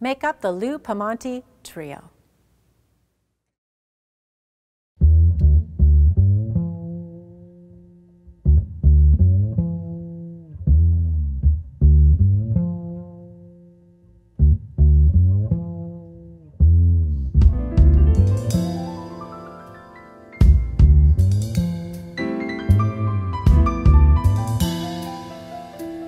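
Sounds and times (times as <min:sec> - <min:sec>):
double bass plucked notes: 0:05.0 - 0:26.0
other instruments playing: 0:17.5 - 0:26.0.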